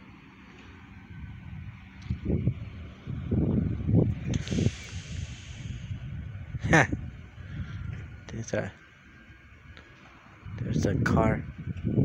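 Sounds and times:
wind buffeting microphone: 0:00.7 - 0:12.0
brief hiss: 0:04.3 - 0:05.9.

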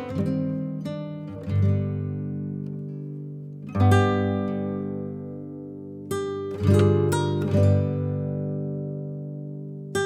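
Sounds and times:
acoustic guitar chord strummed: 0:00.0 - 0:10.0.

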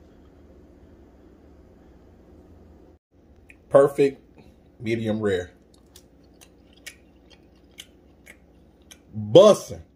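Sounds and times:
person chewing: 0:05.6 - 0:09.1.

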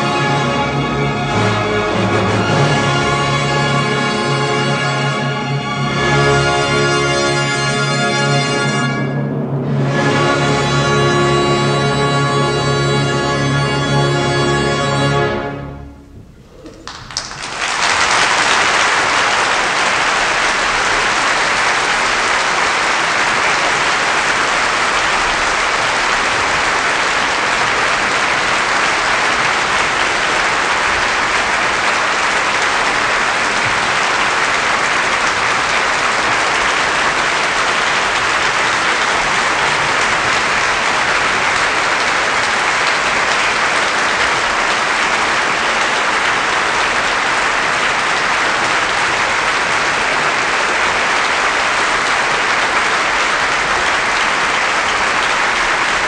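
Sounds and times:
audience applauding: 0:00.0 - 0:09.0, 0:16.4 - 0:56.0.

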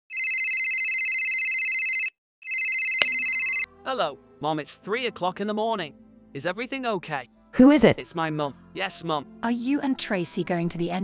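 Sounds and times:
telephone ringing: 0:00.1 - 0:03.7.

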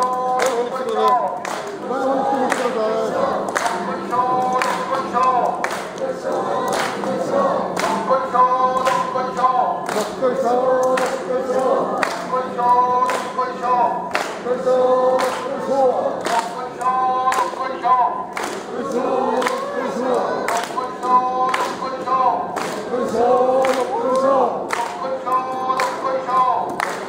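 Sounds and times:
group chanting: 0:00.0 - 0:27.0.

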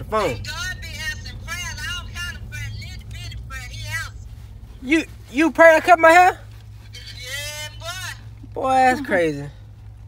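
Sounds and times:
idling truck engine hum: 0:00.0 - 0:10.0
person talking through phone speaker: 0:06.9 - 0:09.0.

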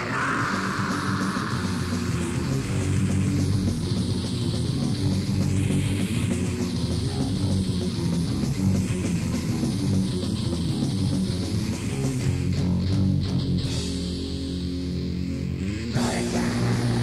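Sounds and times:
bass guitar riff: 0:00.0 - 0:17.0
distorted electric guitars: 0:00.0 - 0:17.0
metal band playing: 0:00.0 - 0:17.0.

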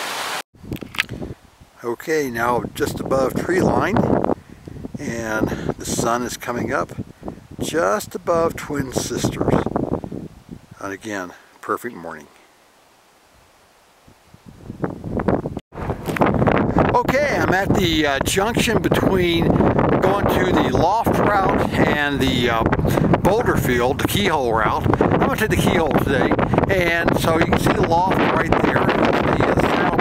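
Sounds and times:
faint wind: 0:00.0 - 0:30.0.

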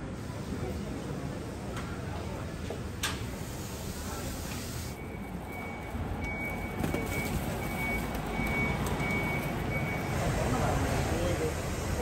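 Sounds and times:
bus engines rumbling: 0:00.0 - 0:12.0
vehicle warning beeper: 0:04.0 - 0:10.7.

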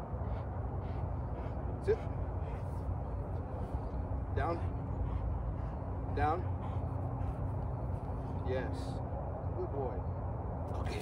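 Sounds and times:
faint constant hum: 0:00.0 - 0:11.0
low outdoor rumble: 0:00.0 - 0:11.0.

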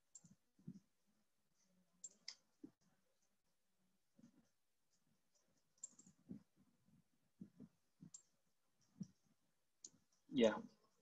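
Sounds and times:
computer mouse clicks: 0:00.1 - 0:00.8, 0:02.0 - 0:02.6, 0:05.4 - 0:06.5.

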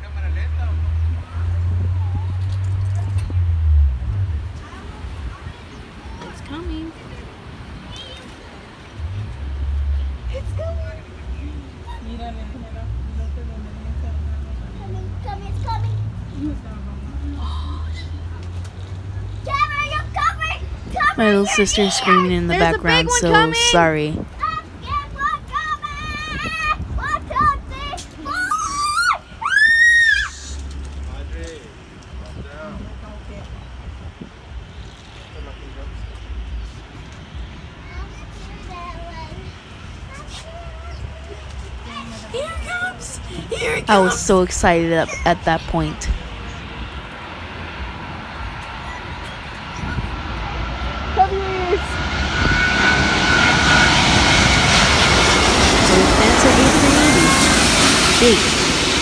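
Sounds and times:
traffic: 0:00.0 - 0:59.0
faint voices: 0:04.5 - 0:24.3, 0:34.9 - 0:59.0
airliner passing overhead: 0:10.1 - 0:59.0
high jet engine whine: 0:16.5 - 0:59.0
girl screaming: 0:28.2 - 0:30.5.

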